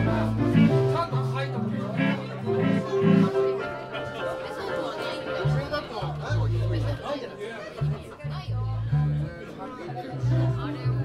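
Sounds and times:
electric bass low notes: 0.0 - 3.5, 7.8 - 9.4, 10.1 - 11.0
people chattering: 0.0 - 11.0.

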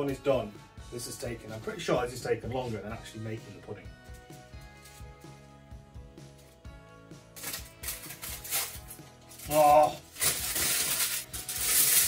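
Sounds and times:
kitchen foil crinkling: 4.8 - 5.2, 7.4 - 12.0.

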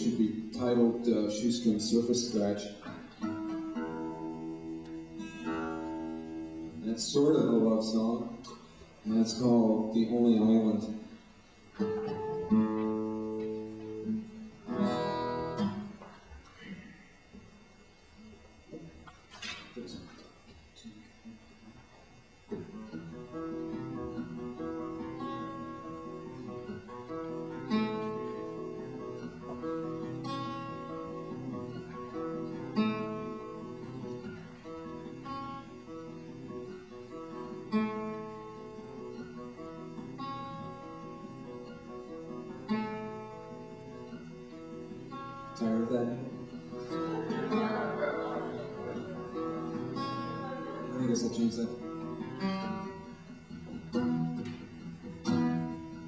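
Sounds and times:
acoustic guitar chord ringing: 0.0 - 20.1, 20.9 - 56.0.

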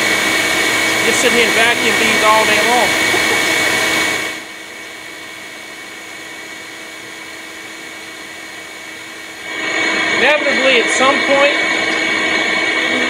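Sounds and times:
vacuum humming: 0.0 - 13.0.

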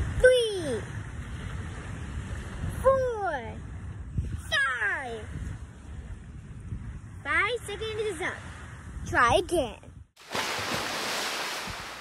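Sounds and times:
wind rumble on microphone: 0.0 - 10.2.

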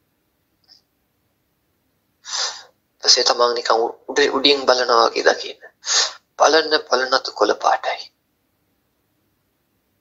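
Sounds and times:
man inhaling: 2.2 - 2.7, 5.8 - 6.3.

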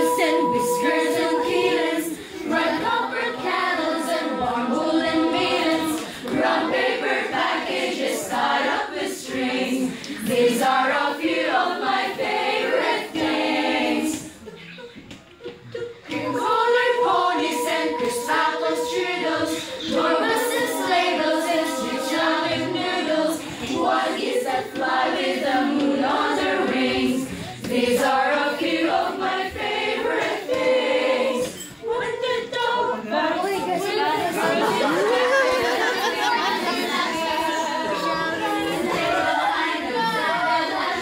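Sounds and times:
children's choir singing: 0.0 - 41.0.

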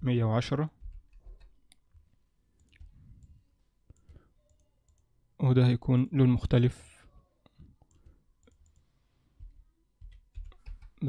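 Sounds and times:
computer mouse clicks: 2.6 - 5.1, 7.8 - 11.0.

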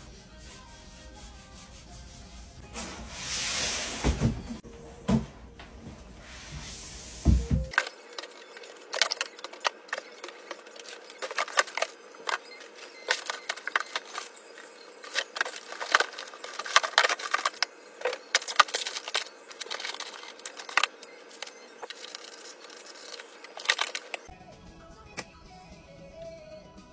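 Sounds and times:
faint background music: 7.2 - 26.9
packing paper crinkling: 7.7 - 24.3
plastic bottles knocking together: 15.0 - 24.3.

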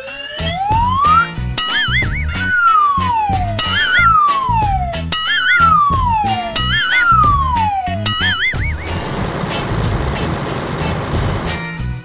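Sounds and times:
bouncy background music: 0.0 - 12.0
cartoon warble and falling whistle: 0.4 - 9.0.

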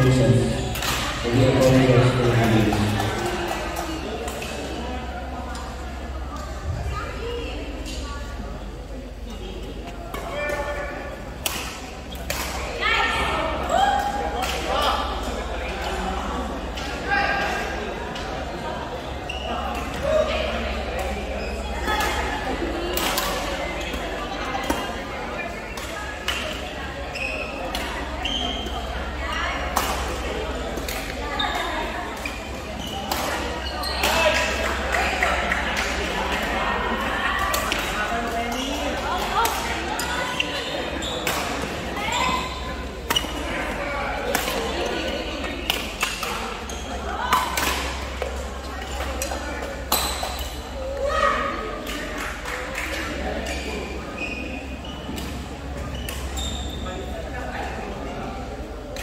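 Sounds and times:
chatter of voices: 0.0 - 59.0
shoes squeaking on court: 31.2 - 34.5, 38.4 - 43.8, 53.5 - 57.2.

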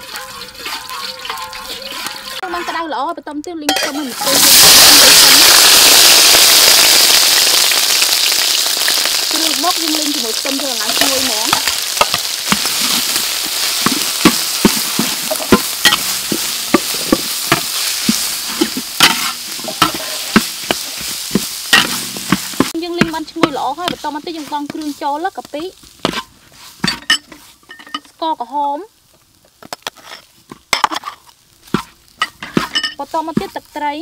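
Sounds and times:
food sizzling in hot oil: 0.0 - 3.0, 3.7 - 34.0
metal spatula scraping wok: 0.0 - 3.1, 3.7 - 5.2, 9.8 - 28.1, 29.8 - 33.8.

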